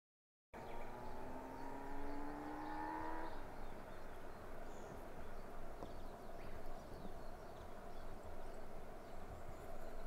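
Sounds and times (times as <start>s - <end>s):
motor engine drone rising: 0.6s - 3.5s
outdoor background noise: 0.6s - 10.0s.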